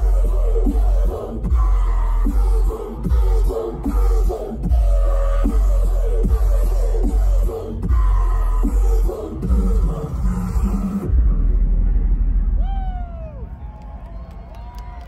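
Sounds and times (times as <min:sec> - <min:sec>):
loud dubstep music: 0:00.0 - 0:12.4
heavy low bass: 0:00.0 - 0:14.6.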